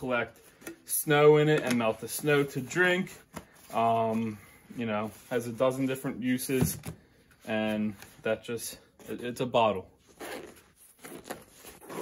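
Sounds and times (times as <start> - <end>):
zipper being pulled open: 10.1 - 12.0.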